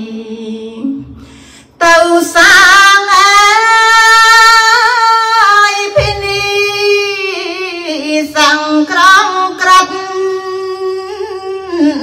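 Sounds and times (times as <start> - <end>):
woman singing a devotional chant: 0.0 - 12.0
low thump: 5.9 - 6.7.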